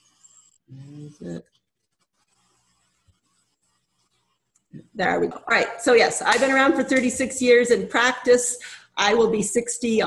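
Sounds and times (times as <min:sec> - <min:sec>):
person speaking: 0:00.7 - 0:01.6.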